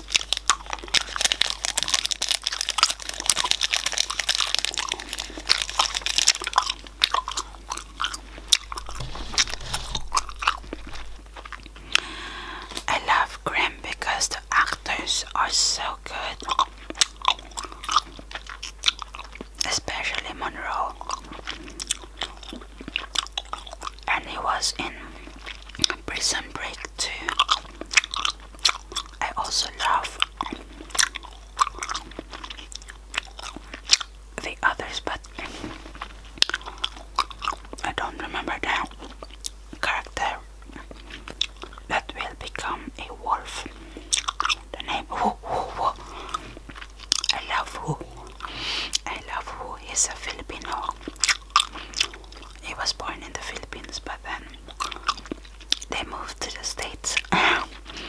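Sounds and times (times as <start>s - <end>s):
chewing gum: 0.0s - 58.0s
wet mouth smacks: 2.6s - 12.1s.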